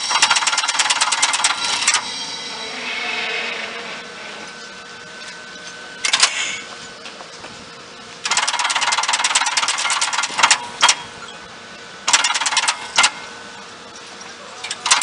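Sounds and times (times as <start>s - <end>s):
train contactors clacking: 0.0s - 7.6s, 12.1s - 15.0s
faint steady hum: 0.0s - 15.0s.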